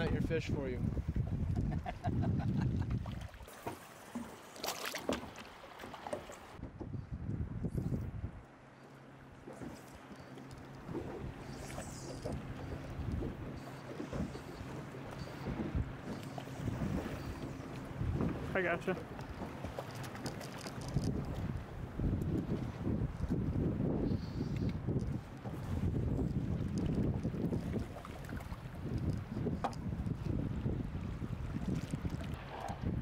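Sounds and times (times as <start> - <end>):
wind on microphone: 0.0 - 3.4, 6.6 - 8.5, 10.8 - 18.6, 19.2 - 33.0
water against boat hull: 0.0 - 7.4, 8.8 - 33.0.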